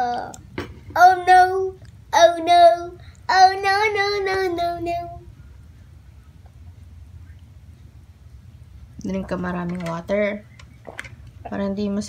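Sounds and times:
girl singing wordless tune: 0:00.0 - 0:05.4.

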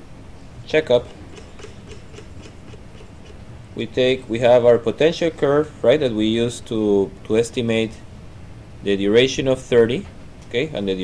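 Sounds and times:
low room hum: 0:00.0 - 0:11.0
faint computer scrolling clicks: 0:00.9 - 0:03.4.

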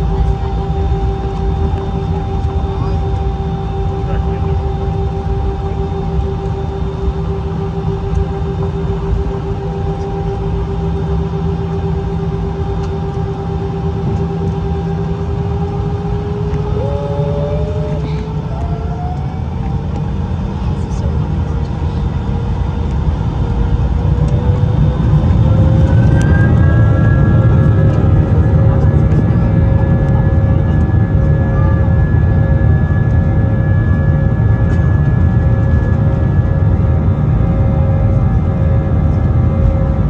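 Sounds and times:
jet engine low rumble: 0:00.0 - 0:40.0
jet engine whine: 0:00.0 - 0:40.0.

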